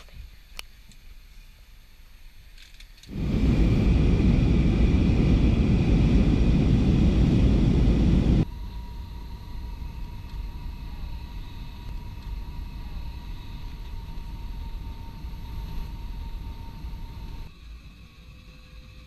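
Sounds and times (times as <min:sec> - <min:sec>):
cabin rumble with faint hum: 0:03.1 - 0:08.5, 0:09.2 - 0:17.5
loud jet engine noise: 0:03.1 - 0:17.5.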